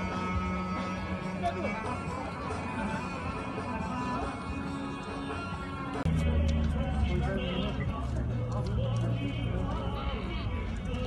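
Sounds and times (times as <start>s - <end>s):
people talking: 1.2s - 4.4s, 6.2s - 11.0s.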